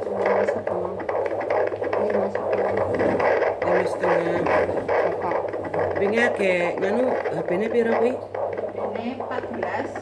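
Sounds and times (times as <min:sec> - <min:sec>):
pulsing whoosh of fetal heartbeat: 0:00.0 - 0:10.0.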